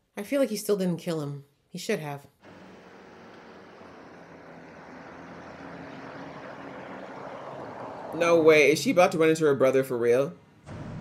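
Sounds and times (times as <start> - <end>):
vehicle engine running: 2.4 - 8.2, 10.6 - 11.0
road noise: 2.4 - 11.0.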